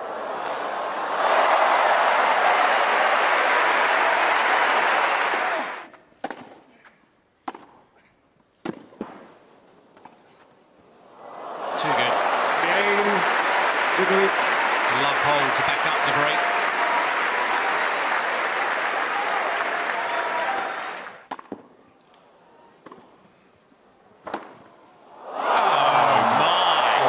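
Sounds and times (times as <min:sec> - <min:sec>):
crowd applauding and cheering: 0:00.0 - 0:05.9, 0:11.3 - 0:21.3, 0:25.3 - 0:27.0
racket hitting ball: 0:06.2 - 0:06.6, 0:07.4 - 0:07.8, 0:08.6 - 0:09.2, 0:21.3 - 0:21.7.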